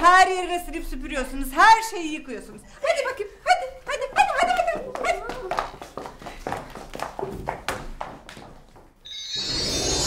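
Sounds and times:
heeled footsteps on hard floor: 4.0s - 9.0s.

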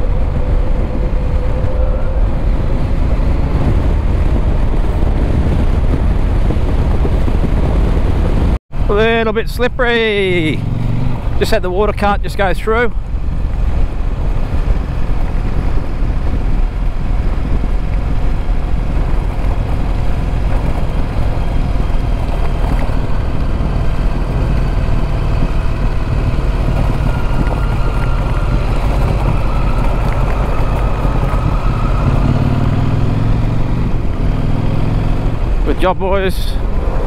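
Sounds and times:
motorcycle engine: 0.0s - 9.2s, 9.8s - 37.0s
low engine drone: 0.0s - 37.0s
wind rush: 0.0s - 37.0s
tyres on gravel: 25.9s - 32.6s.

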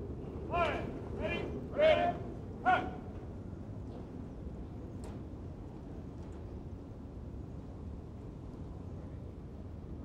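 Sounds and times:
outdoor background hum: 0.0s - 10.0s
shouted drill commands: 0.5s - 3.0s.

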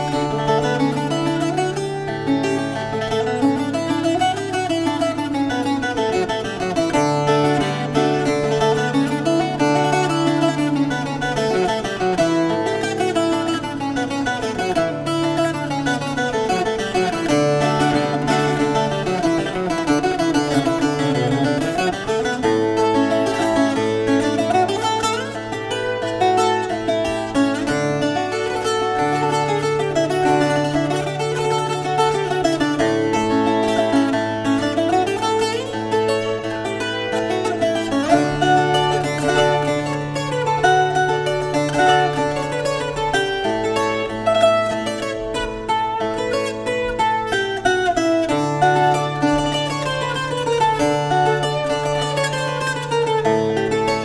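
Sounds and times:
twelve-string guitar dance tune: 0.0s - 54.0s.

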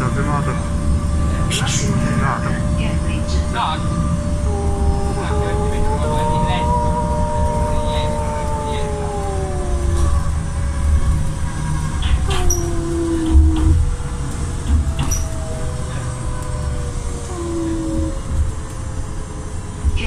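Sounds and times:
whining tones sliding down: 0.0s - 18.8s
bus engine and road rumble: 0.0s - 20.0s.

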